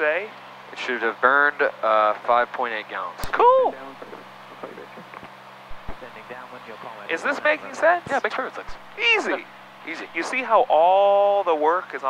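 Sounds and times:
soft low thumps: 3.3 - 6.2, 8.7 - 9.0
aircraft engine drone: 8.6 - 11.3.

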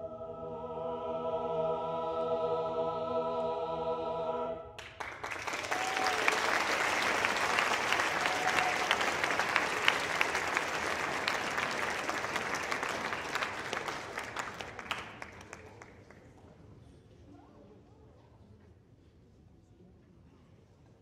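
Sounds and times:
audience applauding: 4.8 - 16.2
short calls from audience: 5.4 - 14.6.

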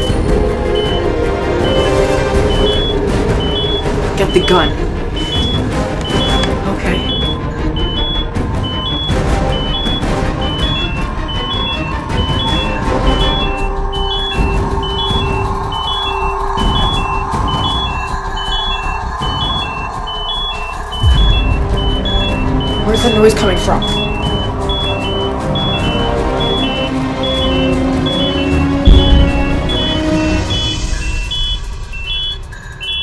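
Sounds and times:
dark suspense music with drone: 0.0 - 33.0
two-tone electronic beeping: 0.0 - 33.0
loud low rumble: 10.4 - 32.0.

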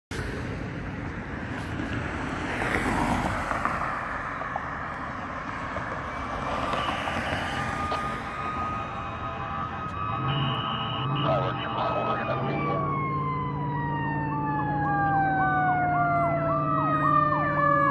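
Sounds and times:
car passing: 0.1 - 17.9
steady traffic noise: 0.1 - 17.9.

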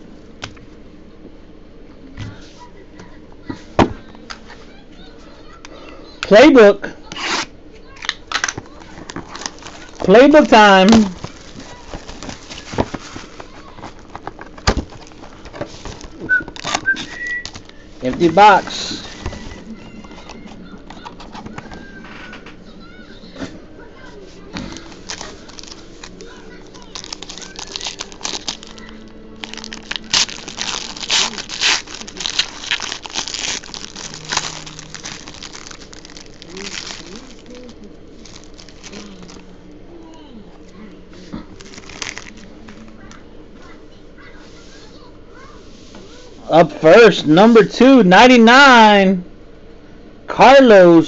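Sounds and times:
foil wrapper crinkling: 7.9 - 21.6, 24.5 - 39.7, 41.3 - 43.1.

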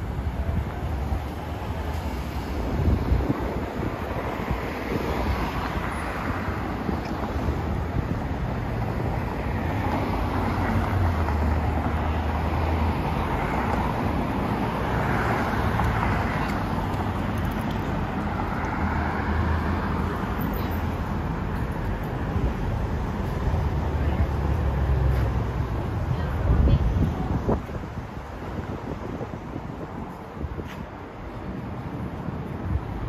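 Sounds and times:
cars driving past: 0.0 - 33.0
steady low traffic rumble: 0.0 - 33.0.

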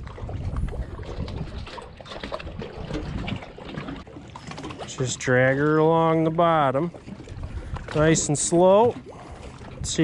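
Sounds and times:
water trickling and splashing: 0.0 - 10.0.

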